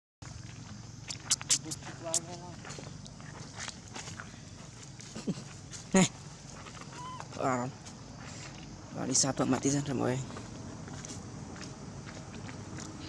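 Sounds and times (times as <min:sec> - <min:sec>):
monkey sharp call: 0:01.1 - 0:02.3, 0:06.9 - 0:07.3
monkey wavering cry: 0:06.9 - 0:07.4.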